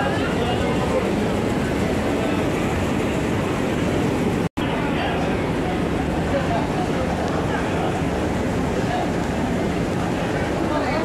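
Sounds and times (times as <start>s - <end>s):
factory machinery running: 0.0s - 11.0s.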